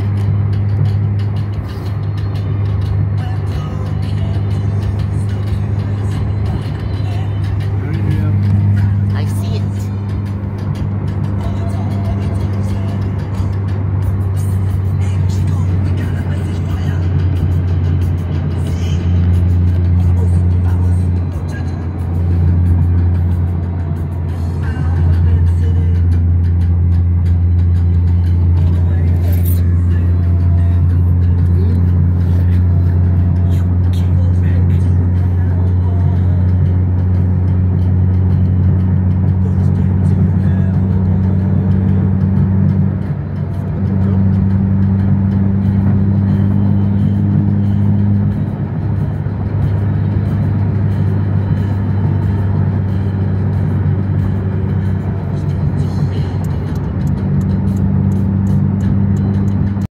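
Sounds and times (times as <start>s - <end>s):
car road and engine drone: 0.0s - 59.9s
music playing: 0.0s - 59.9s.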